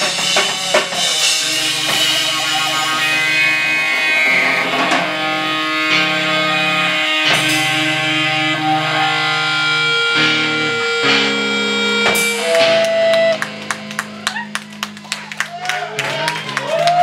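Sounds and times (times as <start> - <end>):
punk band playing live: 0.0 - 17.0
people clapping and cheering: 12.4 - 17.0.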